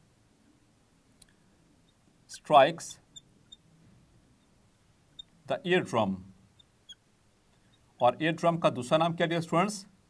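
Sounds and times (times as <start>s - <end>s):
marker squeaking on glass: 1.8s - 3.7s, 4.4s - 5.4s, 6.5s - 7.9s.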